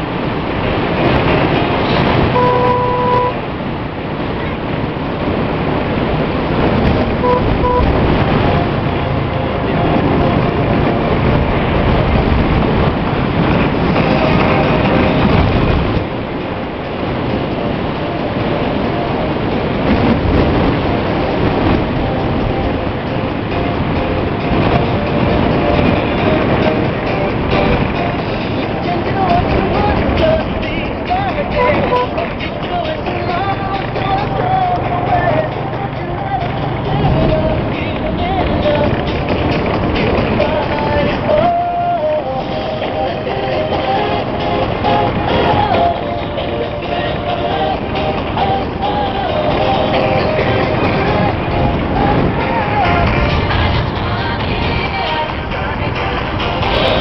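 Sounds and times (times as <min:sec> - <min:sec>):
motorcycle engine and wind rumble: 0:00.0 - 0:57.0
motorcycle horn beep: 0:02.4 - 0:03.4, 0:07.2 - 0:08.6, 0:31.6 - 0:32.3.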